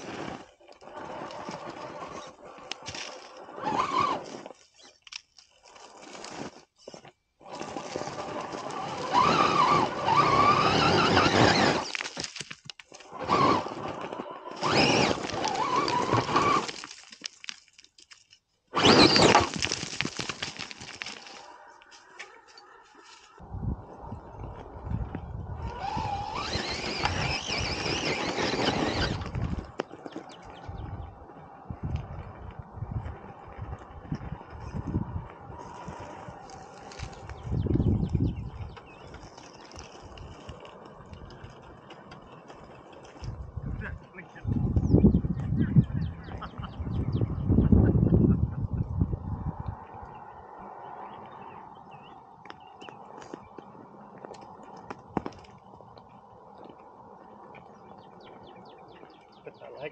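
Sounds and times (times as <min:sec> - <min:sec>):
tyres crunching over rock: 0:00.0 - 0:23.4, 0:25.1 - 0:30.7, 0:31.9 - 0:44.8, 0:52.4 - 0:59.5
electric motor whining: 0:07.4 - 0:12.0, 0:13.1 - 0:16.7, 0:24.8 - 0:29.8.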